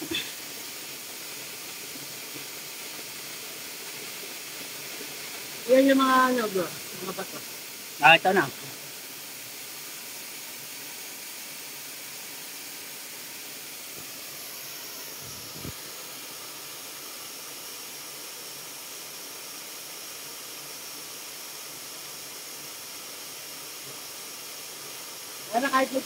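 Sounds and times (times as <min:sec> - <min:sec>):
waterfall rushing: 0:00.0 - 0:17.7, 0:21.9 - 0:26.0.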